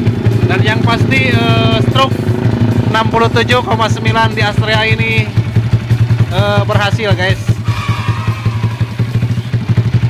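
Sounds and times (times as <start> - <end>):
single-cylinder engine idling: 0.0 - 10.0.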